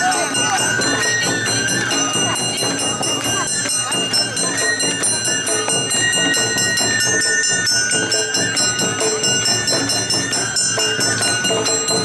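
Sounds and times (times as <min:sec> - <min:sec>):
bamboo flute melody: 0:00.0 - 0:12.0
drums: 0:00.0 - 0:12.0
hand gong struck in rhythm: 0:00.0 - 0:12.0.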